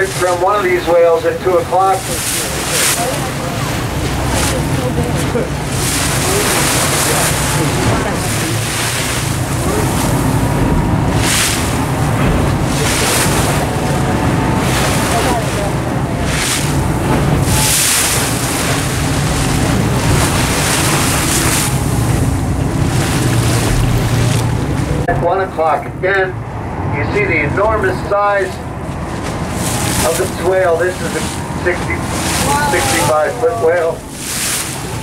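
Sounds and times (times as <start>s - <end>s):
wind buffeting microphone: 0.0s - 25.1s, 26.4s - 35.0s
boat engine humming: 0.0s - 35.0s
waves washing against hull: 0.0s - 35.0s.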